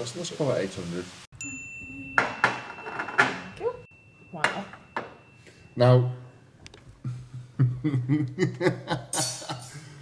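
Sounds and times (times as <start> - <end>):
plates clunking on stone countertop: 2.2 - 3.6, 4.4 - 5.2.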